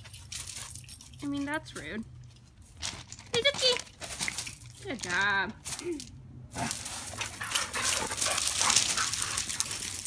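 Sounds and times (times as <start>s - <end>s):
paws scrabbling on gravel: 2.7s - 5.8s, 6.6s - 10.0s.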